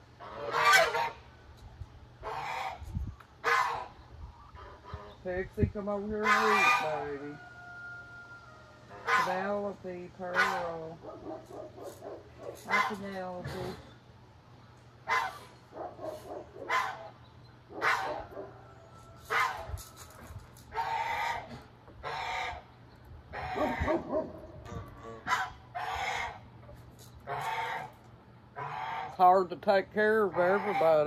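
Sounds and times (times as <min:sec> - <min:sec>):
geese honking: 0:00.0 - 0:01.4, 0:02.2 - 0:05.2, 0:06.0 - 0:13.4, 0:15.0 - 0:19.7, 0:20.6 - 0:26.6, 0:27.2 - 0:31.0.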